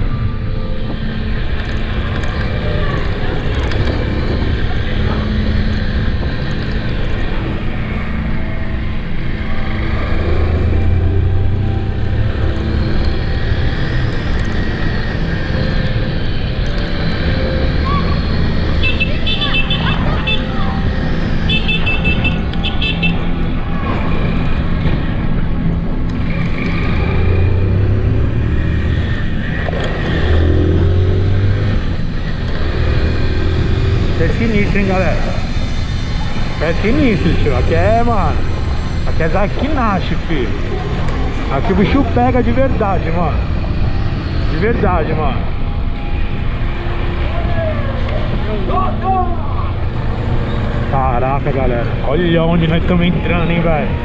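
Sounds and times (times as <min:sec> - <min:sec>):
vehicle engine running: 0:00.0 - 0:54.0.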